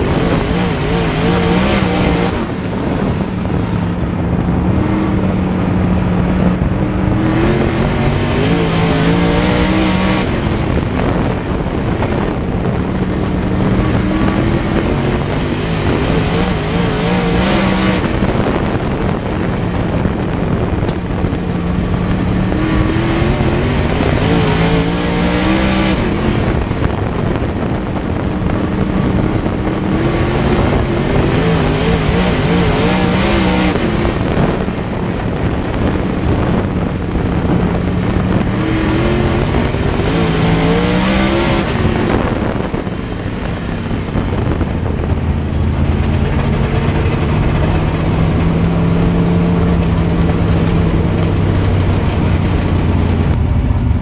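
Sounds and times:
racing engine revving: 0.0 - 54.0.

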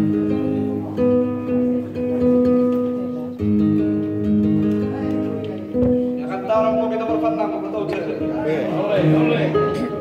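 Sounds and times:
flamenco guitar chords: 0.0 - 10.0.

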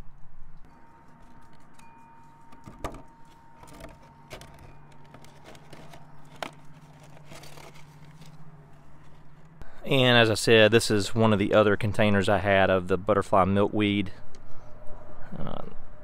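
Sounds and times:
faint steady hum: 0.0 - 16.0
plastic clicks and crinkles: 2.4 - 9.6.

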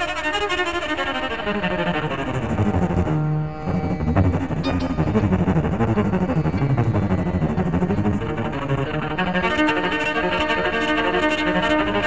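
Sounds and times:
double violin rapid run: 0.0 - 12.0.

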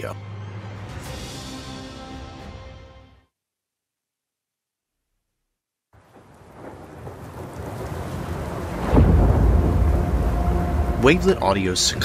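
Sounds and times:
deep thunder rumble: 6.0 - 12.0
rain-like hiss: 6.0 - 12.0
heavy low thunder hit: 6.5 - 12.0.

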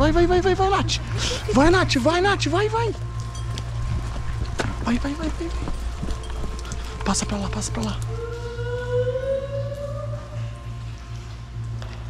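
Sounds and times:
steady low hum: 0.0 - 12.0
woman singing long note: 7.8 - 10.8.

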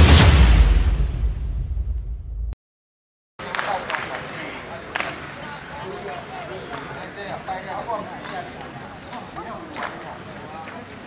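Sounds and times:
distant chatter of people: 3.4 - 11.0.

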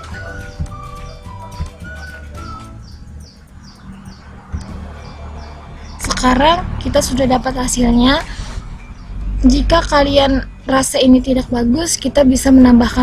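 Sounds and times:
soft background music: 0.0 - 13.0
steady low hum: 2.8 - 13.0.

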